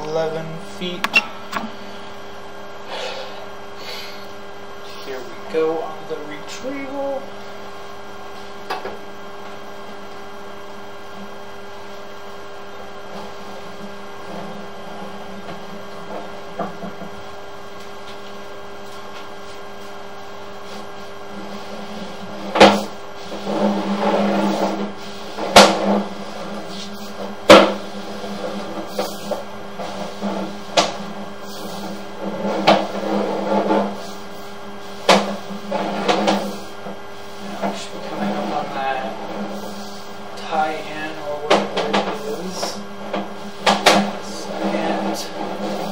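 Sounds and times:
steady electrical hum: 0.0 - 45.9.

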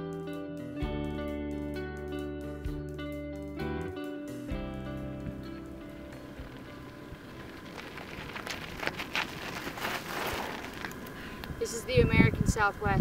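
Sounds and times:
guitar music: 0.0 - 7.7
bike tyres crunching gravel: 5.1 - 12.7
footsteps: 5.3 - 11.6.

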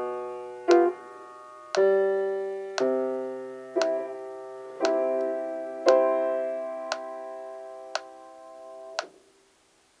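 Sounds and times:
piano chord: 0.0 - 9.0
metronome clicking: 0.7 - 0.9, 1.7 - 1.9, 2.8 - 3.0, 4.8 - 5.3, 5.9 - 6.1, 6.9 - 7.1, 7.9 - 8.1.

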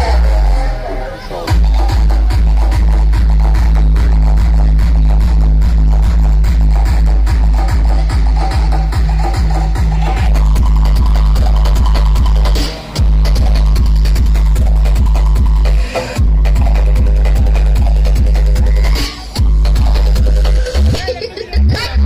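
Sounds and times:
electronic dance music with heavy bass: 0.0 - 22.0.

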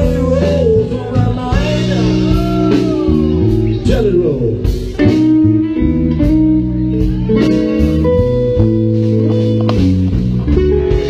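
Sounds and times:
bass and drums: 0.0 - 11.0
electric guitar playing blues: 0.0 - 11.0.

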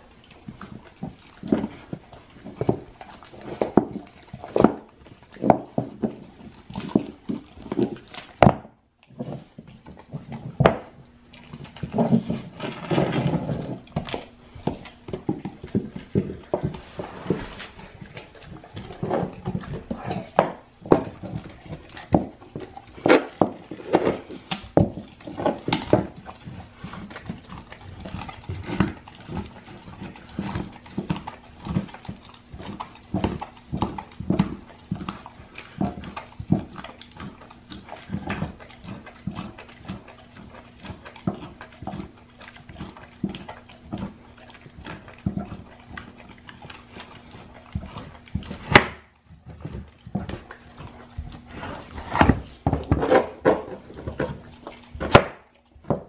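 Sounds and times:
dog chewing bone: 0.0 - 56.0.

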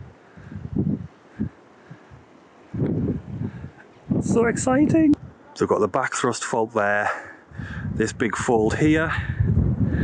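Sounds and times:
wind thumps on microphone: 0.0 - 5.4, 7.5 - 10.0
faint hiss of wind: 0.0 - 10.0.

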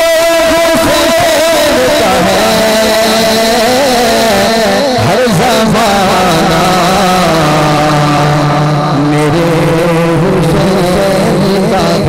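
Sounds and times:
man singing a long note: 0.0 - 12.0.

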